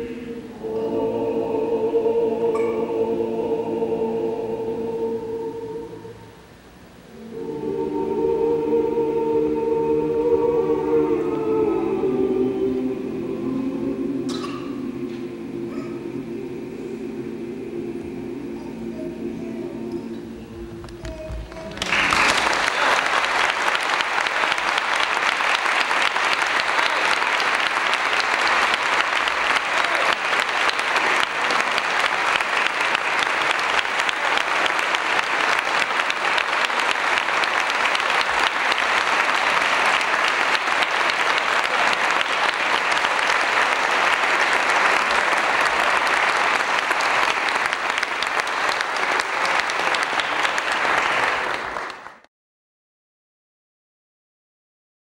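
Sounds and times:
choir singing: 0.0 - 52.0
audience applause: 21.0 - 52.3.

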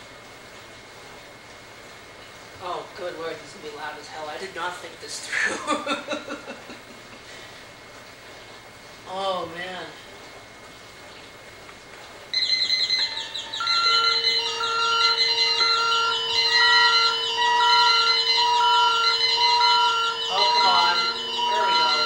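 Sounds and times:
room hiss: 0.0 - 22.0
steady low alarm tone: 5.5 - 8.6, 12.3 - 22.0
high rapid alarm buzz: 12.3 - 22.0
pulsing alarm beeps: 12.3 - 22.0.

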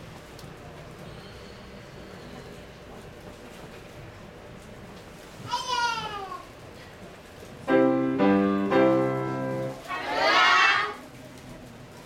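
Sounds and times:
piano chord: 7.7 - 9.9.

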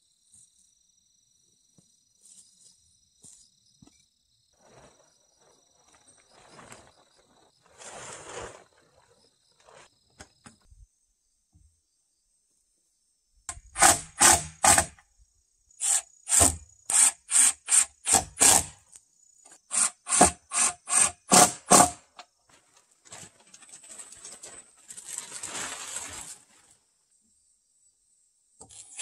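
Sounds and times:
soft rustling scrape: 4.6 - 10.0, 22.5 - 26.8
hand saw rasping on wood: 19.7 - 22.0.

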